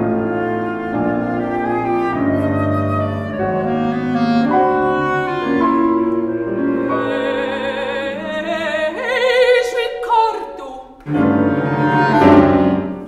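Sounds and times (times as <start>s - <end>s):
clarinet: 0.0s - 9.4s, 11.0s - 13.0s
cello: 0.0s - 10.0s, 11.0s - 13.0s
piano: 0.0s - 13.0s.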